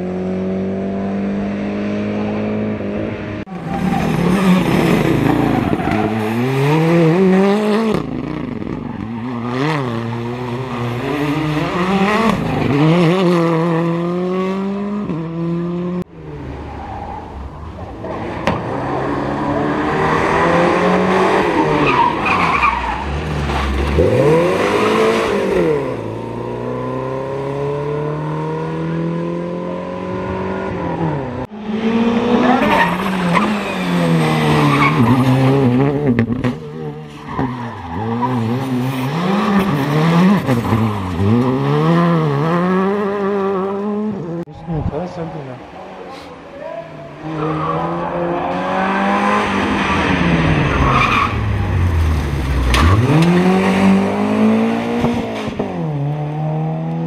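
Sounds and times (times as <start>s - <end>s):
rally car engines revving hard: 0.0s - 16.6s, 17.9s - 46.5s, 47.1s - 57.0s.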